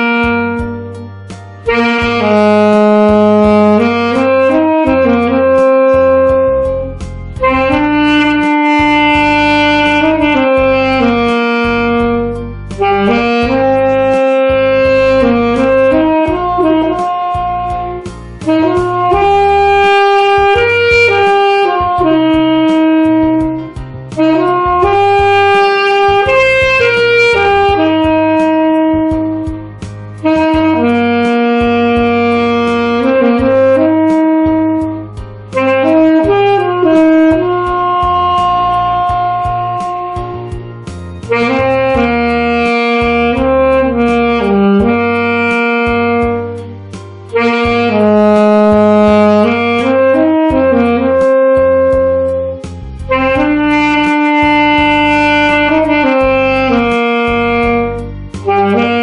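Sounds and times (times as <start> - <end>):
saxophone melody: 0.0 - 59.0
soft low accompaniment: 0.0 - 59.0.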